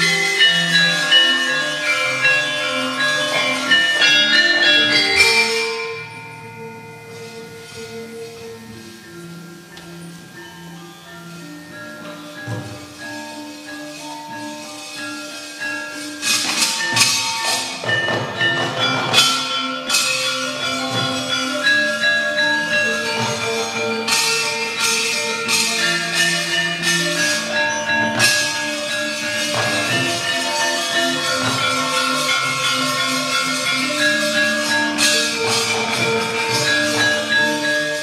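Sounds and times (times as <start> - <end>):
gamelan playing softly: 0.0 - 38.0.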